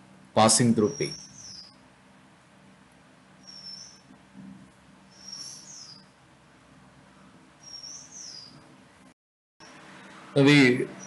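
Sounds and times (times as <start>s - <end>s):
low steady hum: 0.0s - 11.0s
small bird chirping: 0.8s - 1.8s, 3.4s - 4.1s, 5.1s - 6.2s, 7.6s - 8.7s.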